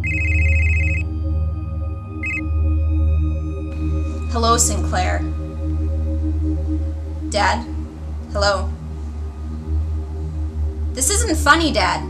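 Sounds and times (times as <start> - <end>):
telephone trilling ring: 0.0 - 1.1
low droning horror score: 1.0 - 12.0.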